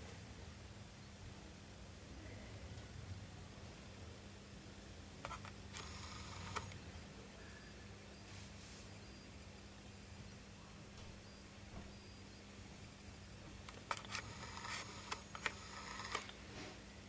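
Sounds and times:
faint low hum: 0.0s - 17.0s
camera handling clicks and rustles: 5.2s - 6.8s, 13.6s - 16.4s.

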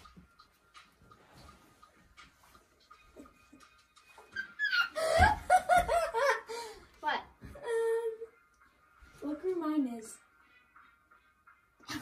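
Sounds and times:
laughter: 4.3s - 6.7s.

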